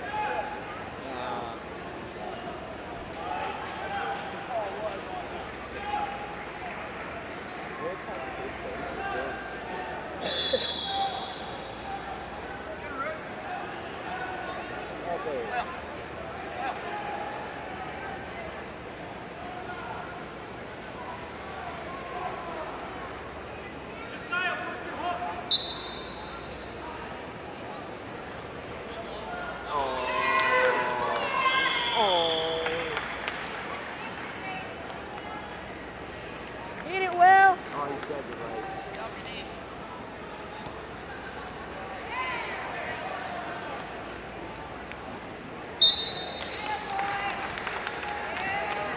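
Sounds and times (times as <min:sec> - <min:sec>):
large hall background noise: 0:00.0 - 0:48.9
referee's whistle blast: 0:10.2 - 0:11.8, 0:25.5 - 0:26.4, 0:45.8 - 0:46.7.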